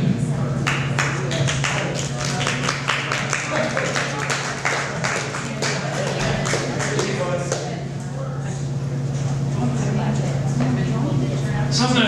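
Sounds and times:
steady low hum: 0.0s - 12.0s
voices: 0.0s - 12.0s
audience clapping: 0.6s - 7.8s.

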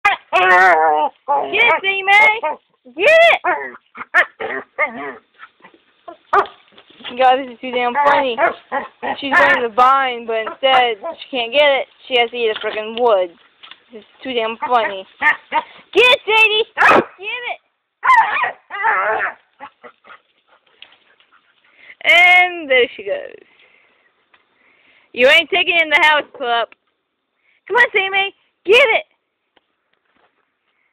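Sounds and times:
vine rustling: 0.2s - 17.2s, 18.6s - 24.7s.

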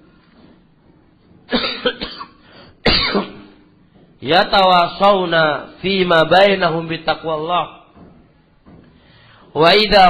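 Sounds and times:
person coughing: 1.5s - 3.6s.

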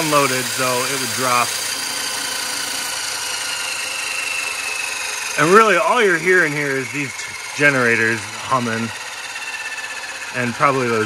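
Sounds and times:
bearing noise: 0.0s - 11.0s
faint high whine: 0.0s - 11.0s
turbine hum and gear whir: 0.0s - 11.0s.

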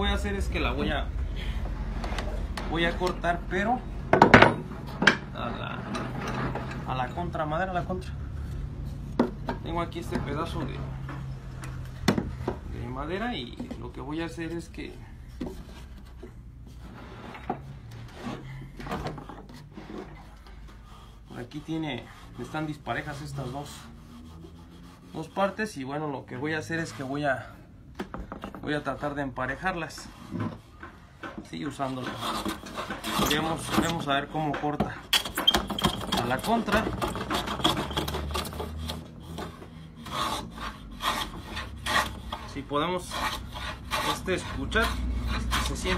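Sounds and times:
wooden blocks knocking on wood: 4.1s - 5.3s
hand plane shaving wood: 19.6s - 25.6s, 31.7s - 34.0s, 36.2s - 45.9s.

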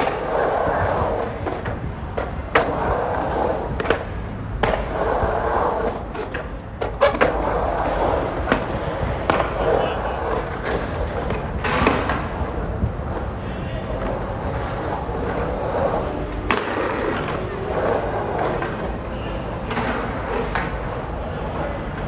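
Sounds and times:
skateboard clacks: 0.0s - 22.0s
skateboard wheels rolling on concrete: 0.0s - 22.0s.

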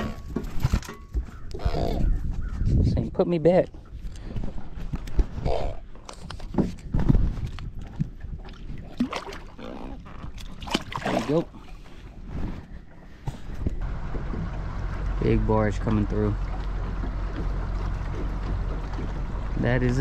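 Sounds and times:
water sloshing and splashing: 3.7s - 20.0s.

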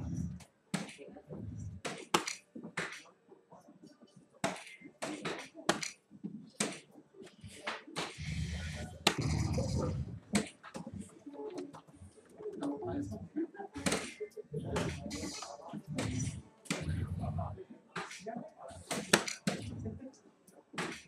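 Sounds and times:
noise with low rumble: 0.0s - 0.4s, 1.2s - 1.8s, 8.2s - 11.2s, 14.6s - 17.7s
darts clicking on dartboards: 0.7s - 3.1s, 4.4s - 6.9s, 7.5s - 11.9s, 13.8s - 17.2s, 18.0s - 19.9s, 20.5s - 21.0s.

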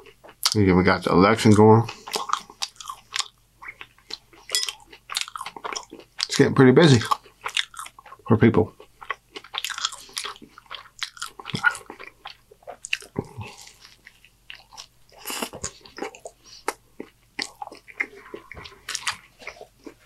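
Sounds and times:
chewing and crunching: 0.0s - 20.0s.

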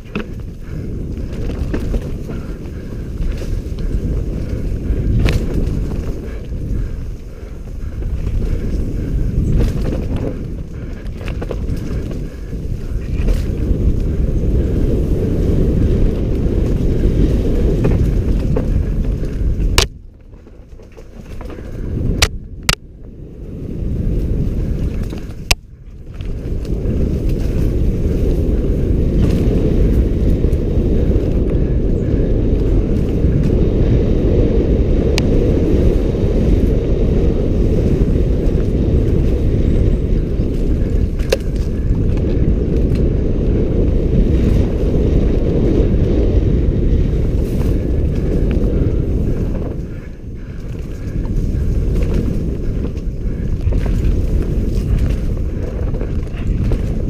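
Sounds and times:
sharp clicks from bike: 0.0s - 22.9s, 24.5s - 34.2s, 35.0s - 57.0s
bike tyre noise: 0.0s - 57.0s
wind buffeting microphone: 0.0s - 57.0s.

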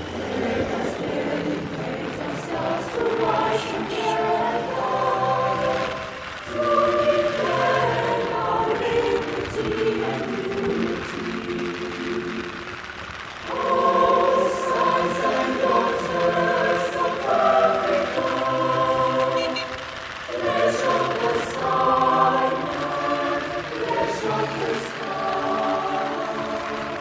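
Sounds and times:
voices singing slow melody: 0.0s - 27.0s.

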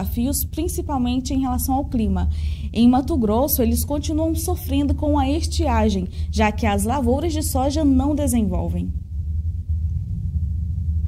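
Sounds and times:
deep rumble: 0.0s - 11.0s.

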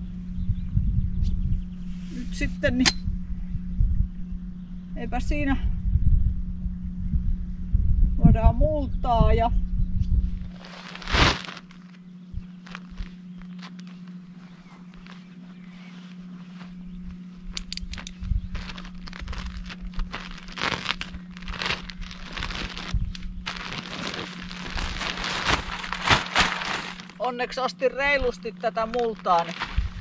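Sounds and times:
steady low hum: 0.0s - 30.0s
plastic sack crinkling: 10.5s - 12.0s, 12.6s - 15.3s, 18.5s - 27.3s, 28.3s - 30.0s.

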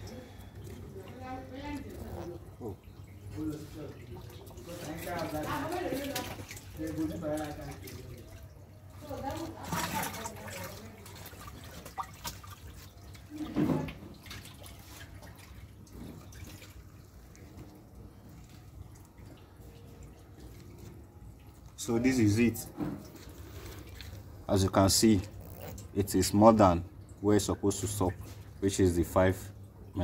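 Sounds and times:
faint indistinct voices: 0.0s - 15.6s.

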